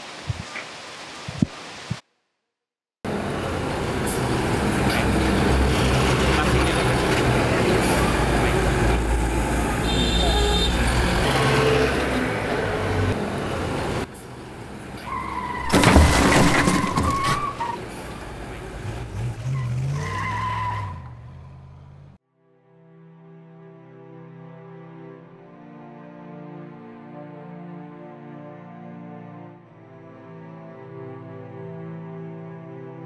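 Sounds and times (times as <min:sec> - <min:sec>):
vehicle engine and road noise: 0:03.1 - 0:22.2
tyre screech: 0:15.0 - 0:17.8.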